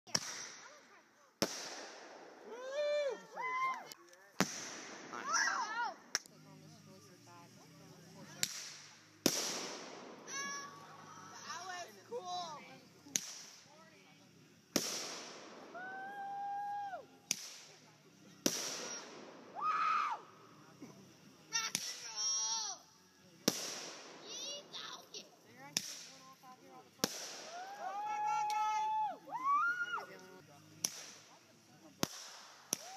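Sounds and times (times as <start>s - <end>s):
firework bangs: 0.1s - 2.9s, 4.4s - 5.6s, 8.3s - 11.7s, 13.1s - 13.7s, 14.7s - 16.2s, 17.2s - 19.6s, 21.6s - 22.4s, 23.4s - 26.3s, 27.0s - 27.7s, 30.8s - 31.3s, 32.0s - 32.9s
firework hiss: 0.1s - 32.9s.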